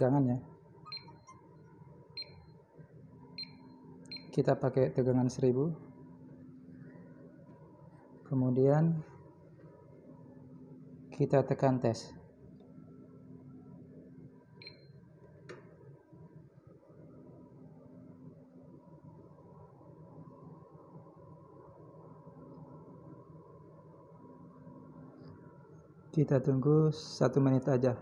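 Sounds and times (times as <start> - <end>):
short high beeps: 0.9 - 1.3, 3.4 - 4.4.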